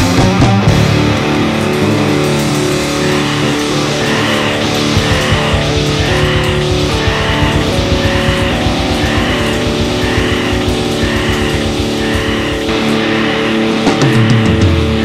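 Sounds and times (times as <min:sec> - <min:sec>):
distorted guitar and bass: 0:00.0 - 0:15.0
fast pulsing low rhythm: 0:00.0 - 0:15.0.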